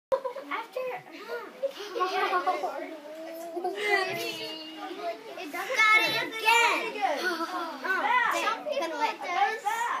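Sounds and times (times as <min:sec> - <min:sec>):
children shouting excitedly: 0:02.0 - 0:10.0.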